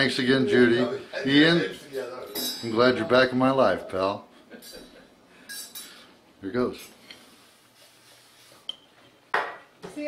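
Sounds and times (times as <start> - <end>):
cutlery clinking on plate: 2.3 - 2.8, 4.6 - 6.1
cutlery scraping plate: 5.5 - 6.1, 7.0 - 7.4.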